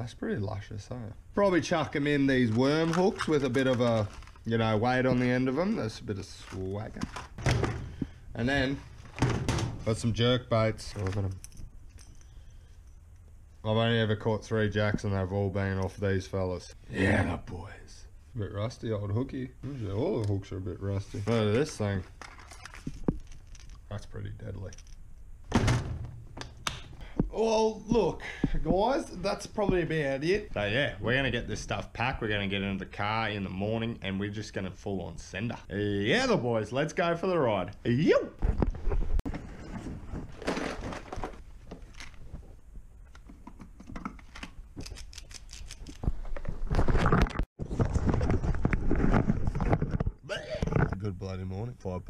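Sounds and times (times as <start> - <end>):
camera handling rustling: 22.2 - 23.8.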